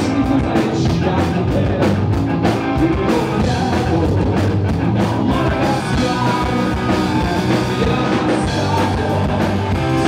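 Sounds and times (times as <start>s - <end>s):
drums steady beat: 0.0s - 10.0s
electric guitar: 0.0s - 10.0s
man singing: 0.0s - 10.0s.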